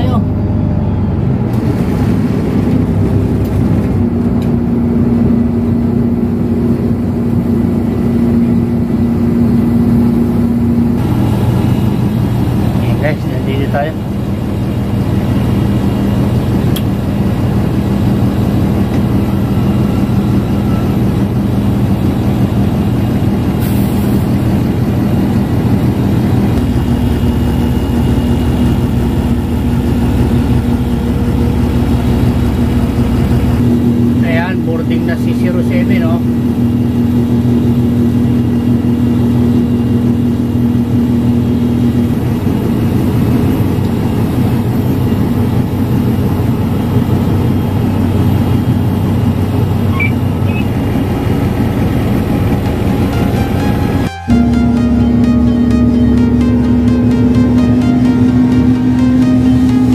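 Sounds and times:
bus engine running: 0.0s - 59.9s.

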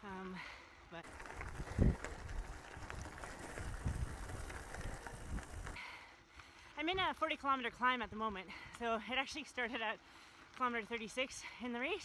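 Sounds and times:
bicycle tyres on gravel: 0.3s - 12.0s
wind rumble on microphone: 1.1s - 5.8s.

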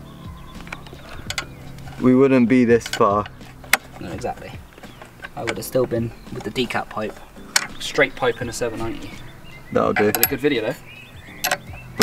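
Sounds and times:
faint background music: 0.0s - 12.0s.

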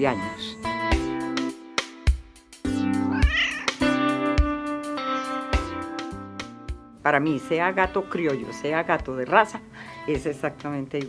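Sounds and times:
plucked guitar music: 0.0s - 11.0s
cat meowing: 3.0s - 3.9s, 5.0s - 5.5s.

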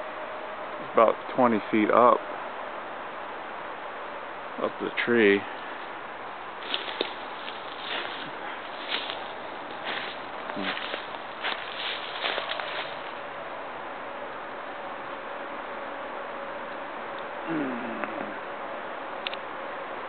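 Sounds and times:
footsteps crunching dry leaves: 6.6s - 13.2s.

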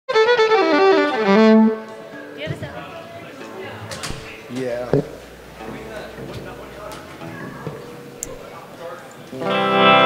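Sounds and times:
fiddle playing: 0.1s - 2.4s.

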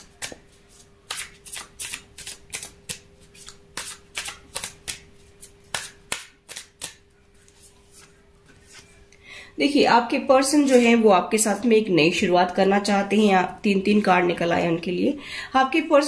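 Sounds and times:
cards being shuffled: 0.2s - 9.0s.

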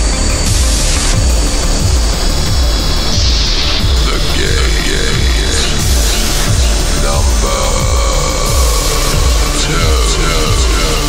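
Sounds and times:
kick drum beat: 0.0s - 10.8s
harsh roaring noise: 0.0s - 11.0s.

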